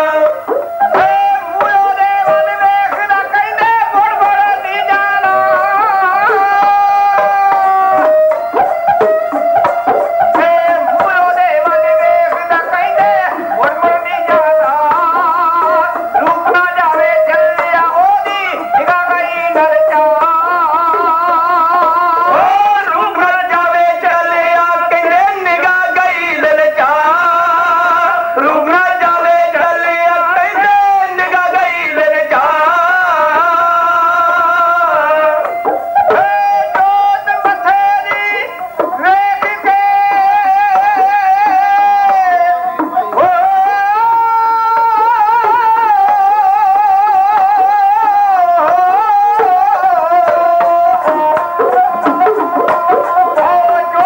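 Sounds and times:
bowed string instrument: 0.0 - 25.2
hand drums: 0.0 - 54.0
sarangi playing: 0.0 - 54.0
singer holding a wavering note: 5.2 - 22.5.

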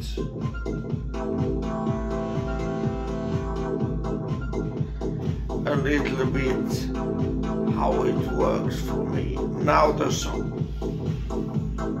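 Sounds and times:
synthesizer low bass pulse: 0.0 - 12.0
synthesizer held chord: 0.6 - 12.0.

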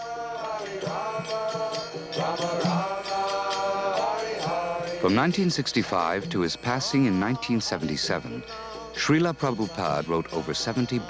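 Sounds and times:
light percussion strikes: 0.0 - 6.9
person chanting: 0.0 - 11.0.

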